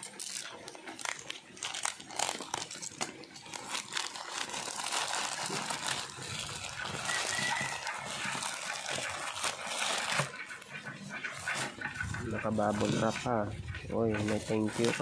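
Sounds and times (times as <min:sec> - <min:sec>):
plastic pouch crinkling: 0:00.0 - 0:10.6
knife cutting plastic: 0:00.0 - 0:10.7.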